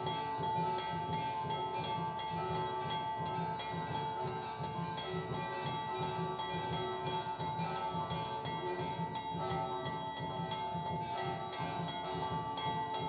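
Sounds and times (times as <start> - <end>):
bells and chimes ringing: 0.0 - 13.0.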